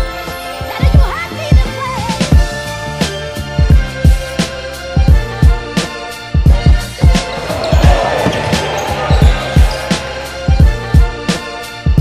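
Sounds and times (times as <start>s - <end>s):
hip hop backing music: 2.6s - 12.0s.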